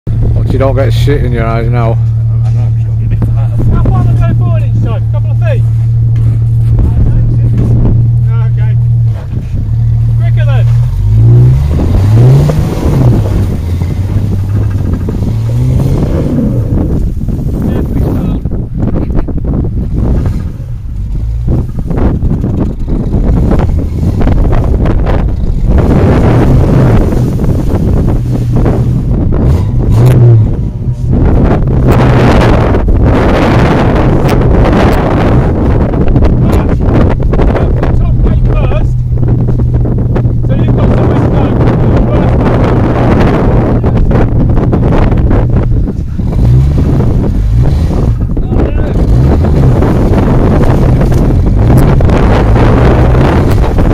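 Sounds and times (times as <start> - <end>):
car engine idling and revving: 0.0 - 53.9.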